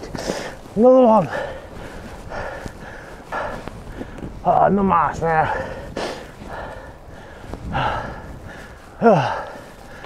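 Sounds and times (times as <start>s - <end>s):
man breathing laboriously: 0.0s - 4.5s, 5.4s - 10.0s.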